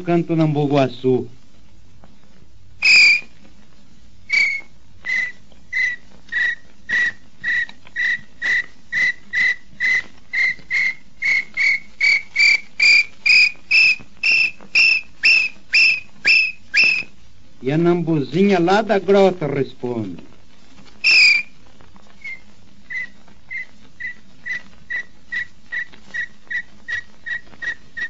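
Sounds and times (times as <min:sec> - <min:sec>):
man whistling bird song: 0:02.8 - 0:03.3, 0:04.3 - 0:17.1, 0:21.0 - 0:21.5, 0:22.2 - 0:28.0.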